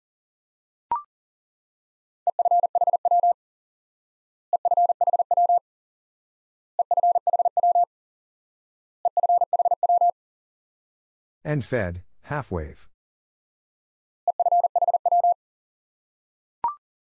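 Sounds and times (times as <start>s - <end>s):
morse code beeps: 2.3s - 3.4s, 4.6s - 5.6s, 6.8s - 7.9s, 9.1s - 10.1s, 14.3s - 15.4s.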